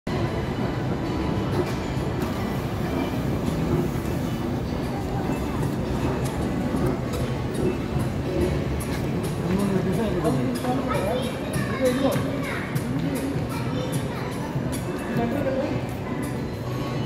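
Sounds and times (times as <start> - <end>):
moving walkway rumbling: 0.1 - 15.1
faint music: 0.1 - 17.0.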